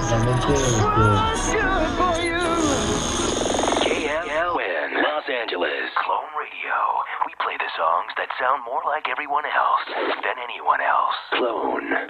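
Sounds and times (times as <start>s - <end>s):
voice with radio-like sound: 0.0s - 12.0s.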